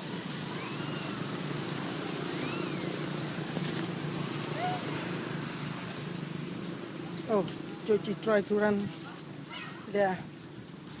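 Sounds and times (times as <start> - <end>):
monkey squeaking: 2.4 - 3.0.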